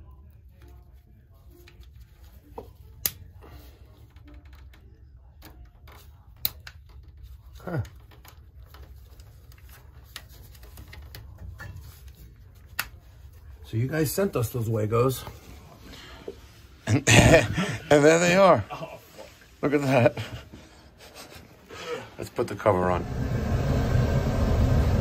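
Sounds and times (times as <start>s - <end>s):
small clicks and rattles: 3.8s - 12.1s
steady low hum: 20.1s - 25.0s.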